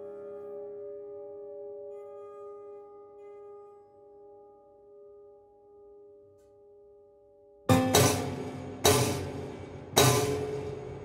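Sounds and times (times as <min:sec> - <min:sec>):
prepared piano notes ringing: 0:07.7 - 0:11.0.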